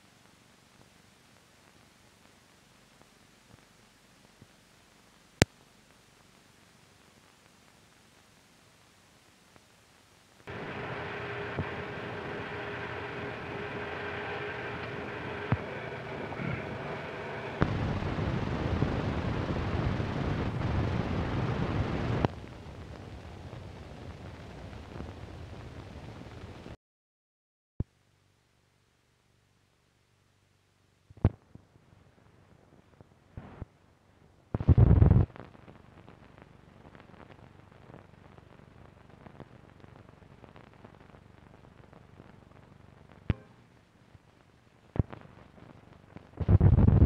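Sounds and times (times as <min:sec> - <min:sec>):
faint crackle: 0:00.0 - 0:26.8, 0:29.2 - 0:47.0
film soundtrack hiss: 0:00.0 - 0:26.8, 0:27.9 - 0:47.0
ticks and crackle: 0:00.1 - 0:26.8, 0:31.1 - 0:47.0
loud rough noise burst: 0:10.5 - 0:22.8
faint steady tone: 0:36.0 - 0:46.2.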